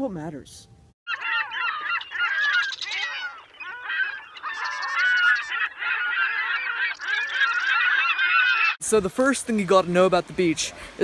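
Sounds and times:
geese honking: 1.1 - 8.8.

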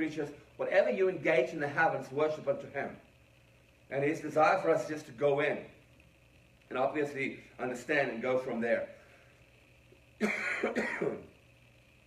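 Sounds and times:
man coughing: 10.2 - 11.3.

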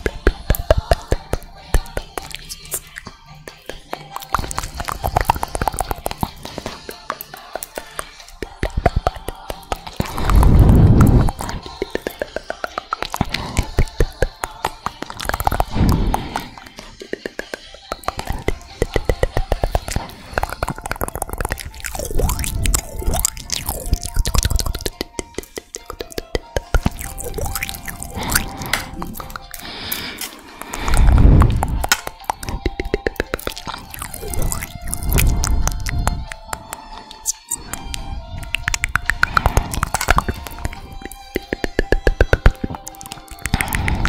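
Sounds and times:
background music: 0.0 - 44.0
tongue clicks and lip smacks: 0.0 - 44.0.

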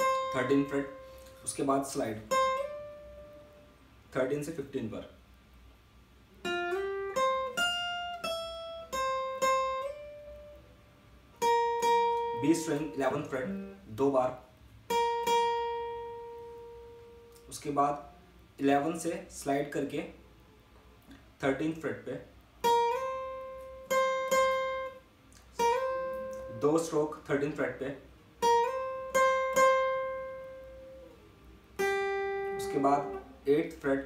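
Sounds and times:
acoustic guitar note plucked: 0.0 - 3.7, 6.4 - 10.7, 11.4 - 14.2, 14.9 - 17.6, 22.6 - 27.7, 28.4 - 33.8.

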